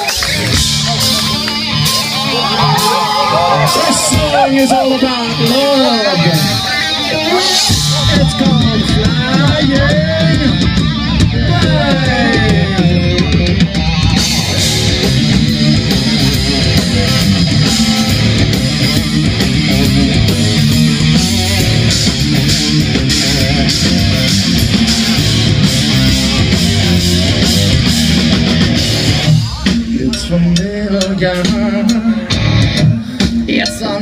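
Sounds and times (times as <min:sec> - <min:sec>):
heavy metal band playing: 0:00.0 - 0:34.0
person singing: 0:11.3 - 0:14.9.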